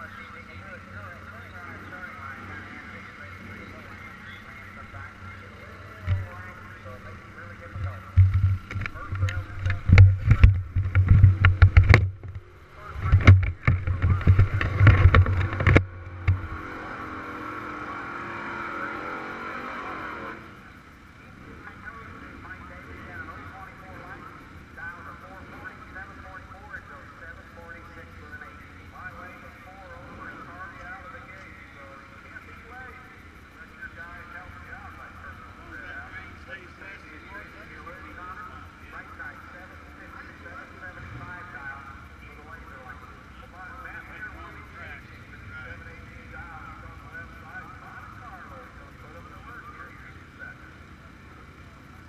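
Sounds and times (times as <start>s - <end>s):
microphone handling bumps and rubbing: 7.6s - 16.6s.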